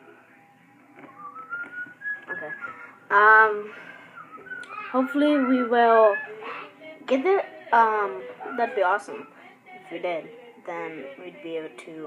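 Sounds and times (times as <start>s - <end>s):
high whistle-like tone: 1.1s - 2.9s.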